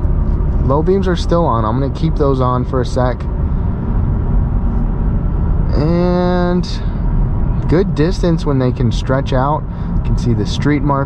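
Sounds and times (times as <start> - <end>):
road and tyre rumble in car: 0.0 - 11.0.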